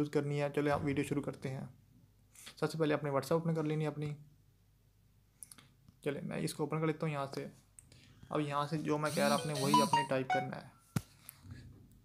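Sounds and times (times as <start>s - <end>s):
man speaking: 8.5s - 10.7s.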